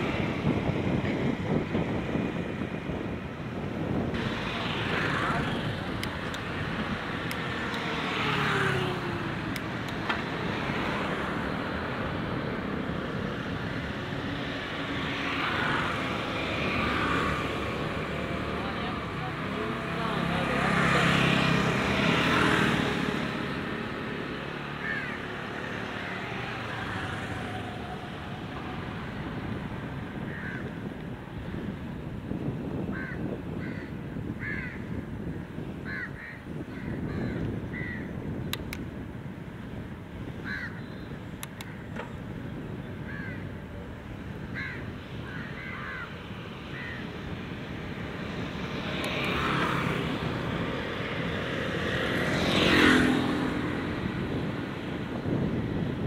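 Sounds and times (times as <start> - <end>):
motor scooter passing: 0.0 - 38.4, 42.2 - 56.0
motor vehicle passing: 3.8 - 30.7, 44.0 - 56.0
crows cawing: 24.7 - 25.4, 30.3 - 30.7, 32.9 - 34.9, 35.8 - 38.1, 40.4 - 40.8, 43.1 - 43.5, 44.5 - 47.0.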